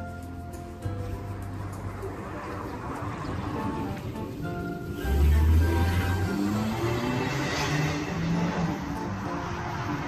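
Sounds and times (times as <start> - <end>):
background music with held notes: 0.0 - 10.0
van passing close by: 0.0 - 10.0.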